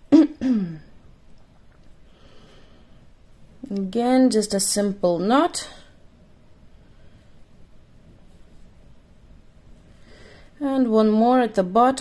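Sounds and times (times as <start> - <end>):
woman clearing her throat: 0.1 - 0.9
woman coughing: 0.1 - 0.9.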